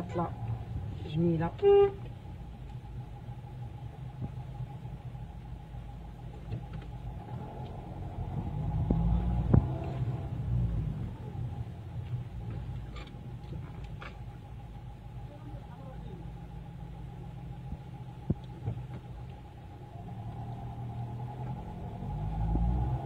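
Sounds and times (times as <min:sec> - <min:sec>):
car road and engine rumble: 0:00.0 - 0:23.0.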